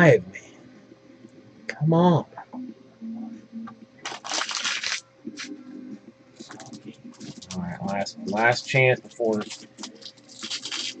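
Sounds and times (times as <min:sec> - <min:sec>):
cards and wrapper rustling: 0:04.0 - 0:05.5, 0:06.4 - 0:11.0
low murmur: 0:05.1 - 0:10.0.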